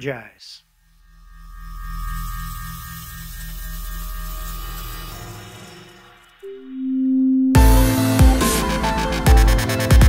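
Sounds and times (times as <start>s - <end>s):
steady ringing tone: 0.6s - 8.1s
pulsing low hum: 0.7s - 9.4s.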